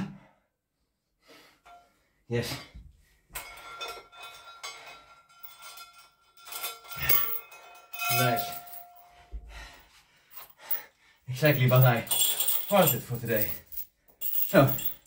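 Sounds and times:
metal chain and plate clanking: 3.3s - 9.2s, 11.4s - 15.0s.

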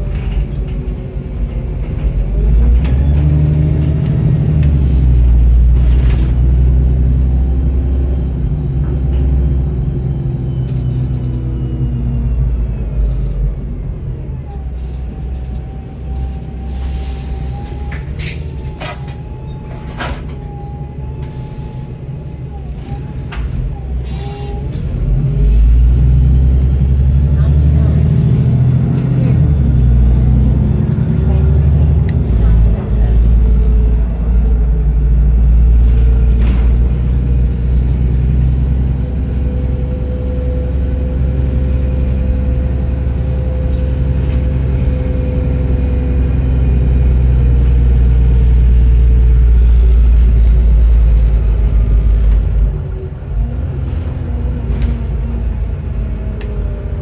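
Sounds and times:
bus engine: 0.0s - 57.0s.

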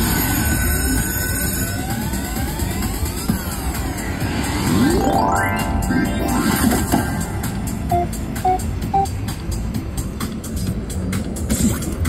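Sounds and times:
slot machine electronic tones: 4.7s - 9.1s.

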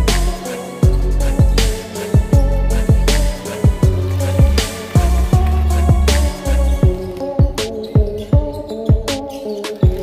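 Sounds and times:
deep kick drums: 2.2s - 9.1s.

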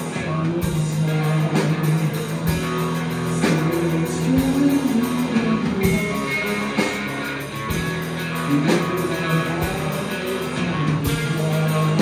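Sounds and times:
bass guitar: 0.0s - 12.0s
electric guitars: 0.0s - 12.0s.

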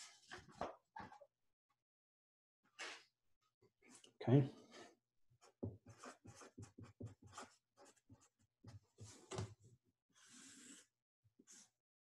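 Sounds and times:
felt-tip marker writing on paper: 5.4s - 8.4s.

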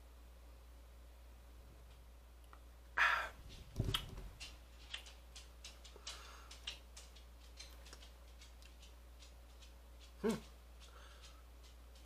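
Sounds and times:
man humming mm: 10.2s - 10.5s.

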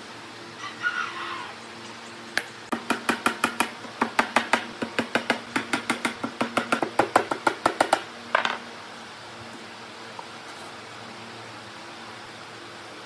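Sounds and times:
hammer tapping nails into wood: 2.7s - 8.5s.

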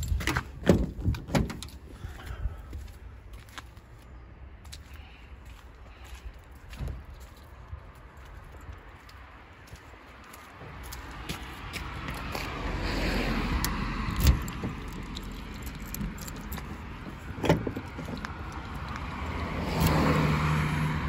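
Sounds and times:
car passing: 8.8s - 21.0s.

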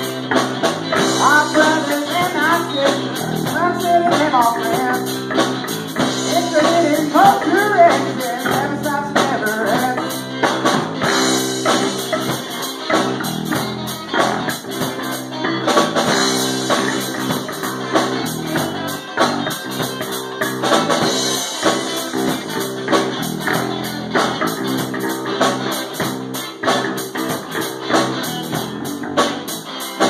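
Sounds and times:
rock band playing: 0.0s - 30.0s
person singing: 1.1s - 5.2s, 6.2s - 10.2s.

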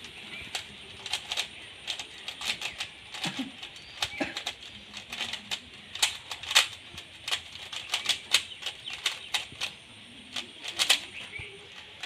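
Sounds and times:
puzzle cube layers clicking: 0.0s - 12.0s.

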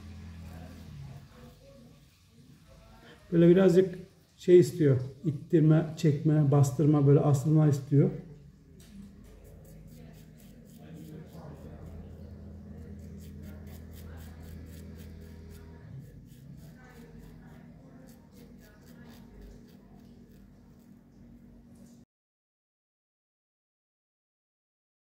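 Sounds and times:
razor scraping beard stubble: 8.8s - 21.9s.

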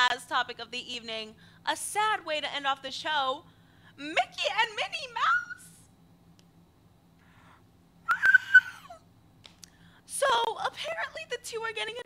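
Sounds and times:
faint breath: 1.4s - 1.6s, 3.4s - 4.0s, 7.2s - 7.7s
woman whimpering wail: 8.1s - 9.0s.

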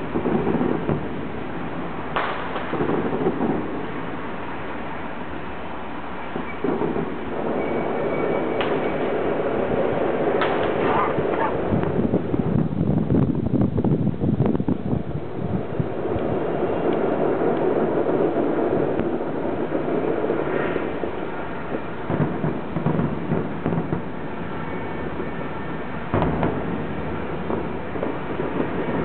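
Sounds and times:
fireworks booms and cracks: 0.0s - 29.0s.

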